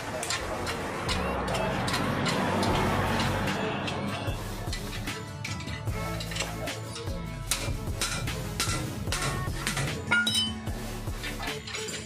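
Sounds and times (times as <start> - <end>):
background music: 0.0 - 12.0
tool clinking against metal: 0.0 - 12.0.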